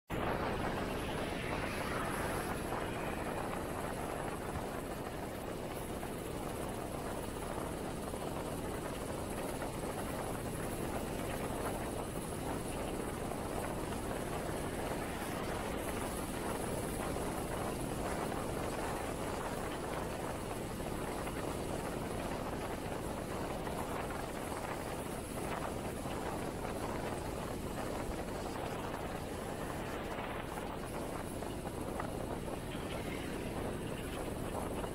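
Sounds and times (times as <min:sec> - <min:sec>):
road and wind noise: 0:00.1 - 0:34.9.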